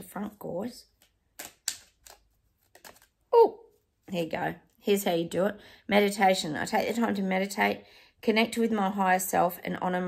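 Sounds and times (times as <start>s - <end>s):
cards being handled: 0.9s - 3.3s.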